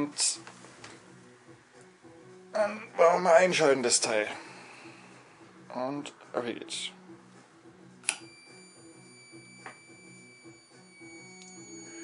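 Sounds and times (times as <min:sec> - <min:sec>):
switch click: 0:08.0 - 0:08.3
high-pitched electrical whine: 0:08.0 - 0:12.0.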